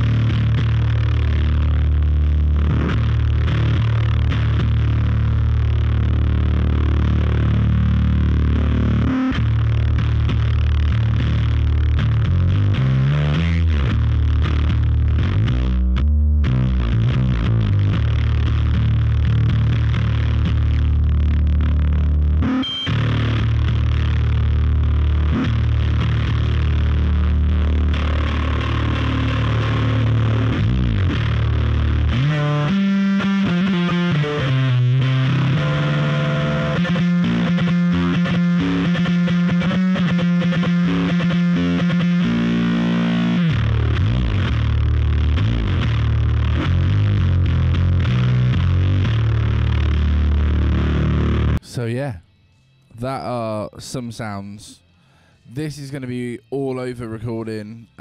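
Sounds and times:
distorted electric bass: 0.0 - 58.0.

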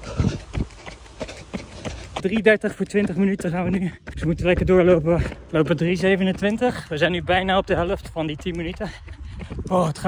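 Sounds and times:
footfalls on road: 0.0 - 10.0.

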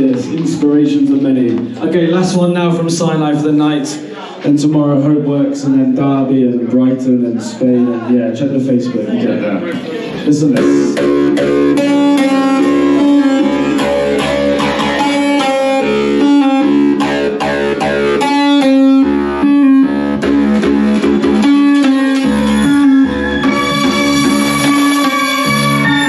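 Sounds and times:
dub music with deep bassline: 10.5 - 26.0.

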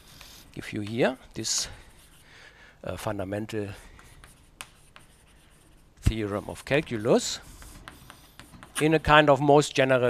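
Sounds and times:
chalk tapping: 0.0 - 2.2, 3.4 - 9.3
chalk scratching on chalkboard: 0.0 - 2.3, 3.1 - 9.3.

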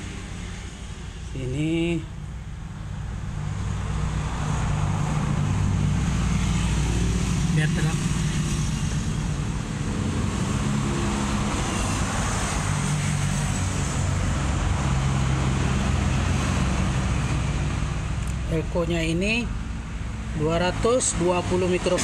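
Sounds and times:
engine humming: 0.0 - 20.3.

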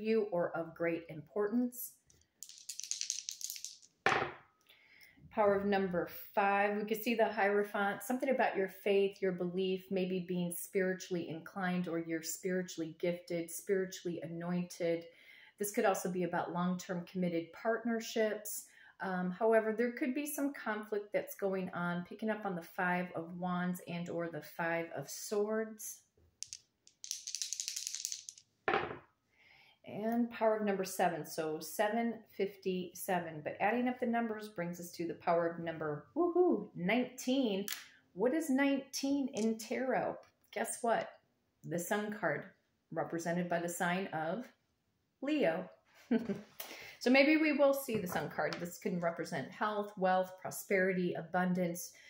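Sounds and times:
dice rattling in a hand: 2.4 - 4.0, 26.4 - 29.0.

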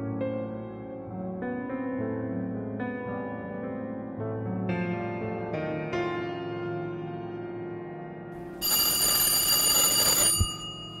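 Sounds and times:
bell ringing loudly: 8.6 - 11.0.

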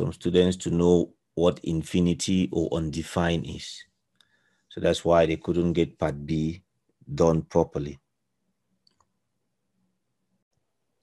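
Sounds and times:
tiny clicks: 8.8 - 9.2.

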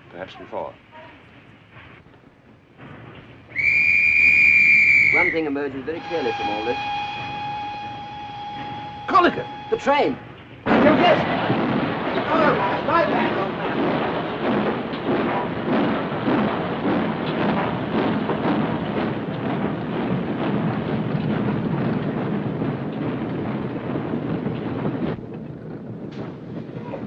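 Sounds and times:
train running rumble: 0.0 - 27.0.

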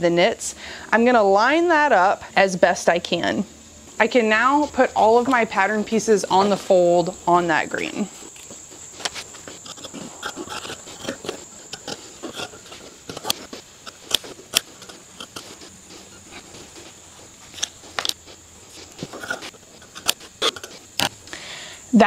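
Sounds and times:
shears snipping fabric: 4.5 - 21.2.

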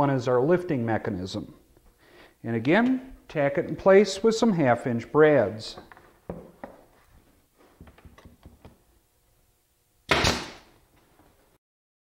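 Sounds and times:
pneumatic nailer shots: 10.1 - 10.8.

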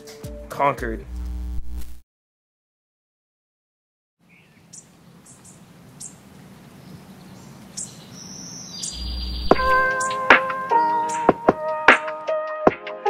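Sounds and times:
deep bass note: 1.0 - 2.0, 9.0 - 10.0
birds chirping: 4.2 - 11.4
music with plucked notes: 9.5 - 13.0.

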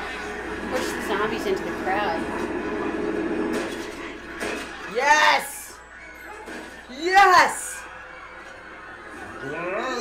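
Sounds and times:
crowd shouting in commotion: 4.4 - 10.0.

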